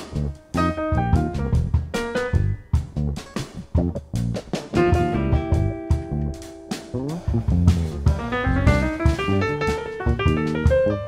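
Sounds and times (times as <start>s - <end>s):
bass: 0.0s - 11.0s
drum kit: 0.0s - 11.0s
jazz guitar notes: 0.0s - 11.0s.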